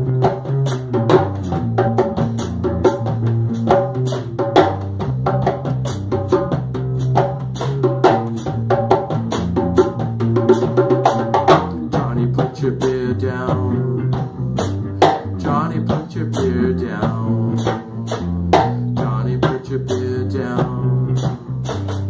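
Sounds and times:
bass line: 0.0 - 22.0
drum kit beat: 0.0 - 22.0
instrumental rock band: 0.0 - 22.0.

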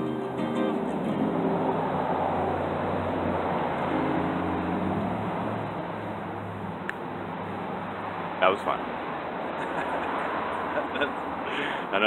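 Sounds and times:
strummed string chord: 0.0 - 1.6, 3.9 - 5.3
passing vehicle engine and road noise: 0.0 - 12.0.

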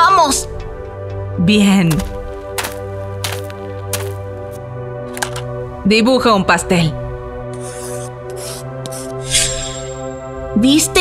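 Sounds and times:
background music: 0.0 - 11.0
pencil scratching on paper: 7.5 - 9.2.

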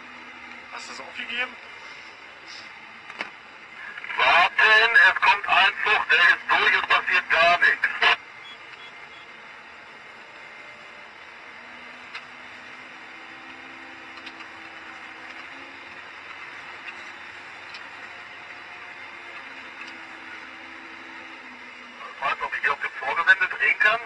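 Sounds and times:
vehicle running noise in cab: 0.0 - 24.0.

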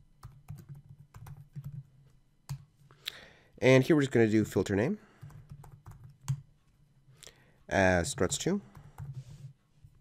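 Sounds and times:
computer keyboard typing: 0.2 - 1.9, 5.2 - 6.4, 8.1 - 9.2.

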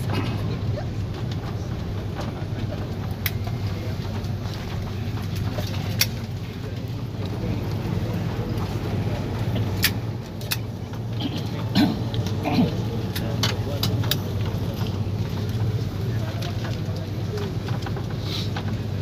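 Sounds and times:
airliner cabin rumble: 0.0 - 19.0
sharp clicks and rattles: 0.0 - 19.0.

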